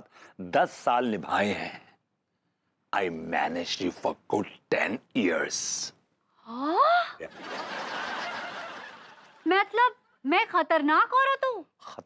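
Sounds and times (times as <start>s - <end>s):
recorded audience laughter: 7.2s - 9.4s.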